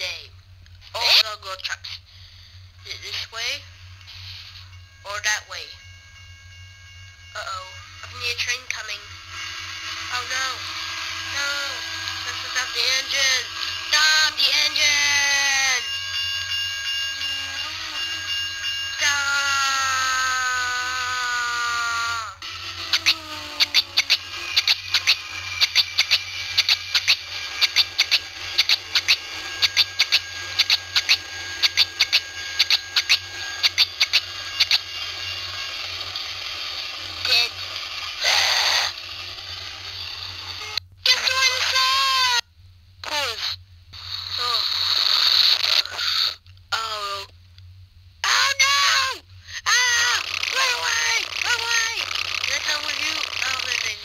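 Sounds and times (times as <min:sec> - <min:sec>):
long falling wail: 0:19.3 - 0:23.8
pitch-shifted voice sounds: 0:44.3 - 0:44.8
rapid clicks and crackle: 0:50.1 - 0:54.0.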